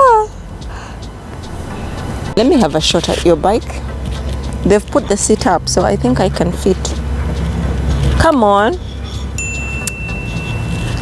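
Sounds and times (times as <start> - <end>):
outdoor background rumble: 0.0 - 11.0
bright chime: 9.3 - 11.0.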